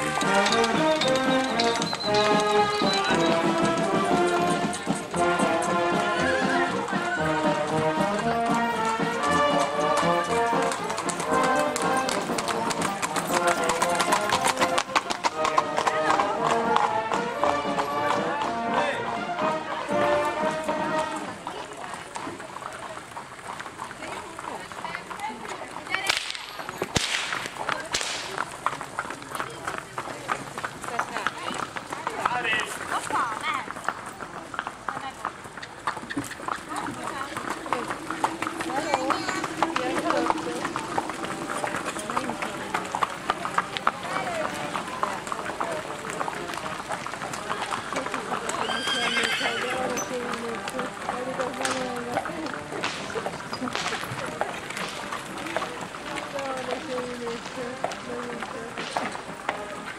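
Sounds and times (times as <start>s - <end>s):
people talking: 0.0s - 23.1s, 24.0s - 59.9s
hooves clip-clopping on asphalt: 0.0s - 59.9s.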